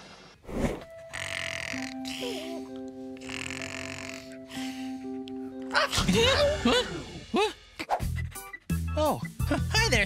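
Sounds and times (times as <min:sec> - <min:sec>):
breathy hissing snores: 0:01.1 - 0:05.1
soft sustained music: 0:04.1 - 0:07.1.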